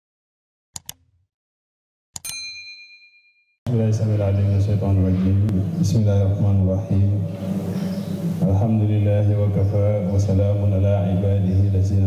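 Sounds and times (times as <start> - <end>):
bright bell ding: 2.2 - 3.4.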